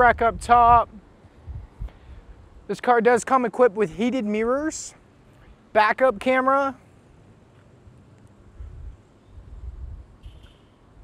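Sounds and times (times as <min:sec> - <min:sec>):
wind buffeting microphone: 0:00.0 - 0:02.7, 0:08.5 - 0:11.0.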